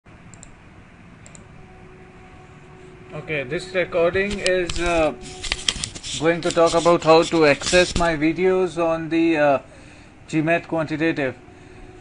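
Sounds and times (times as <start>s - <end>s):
low steady hiss: 0.1s - 12.0s.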